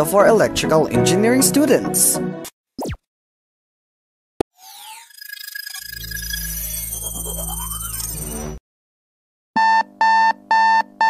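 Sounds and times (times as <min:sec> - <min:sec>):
alarm beeping: 0:04.6 - 0:08.6.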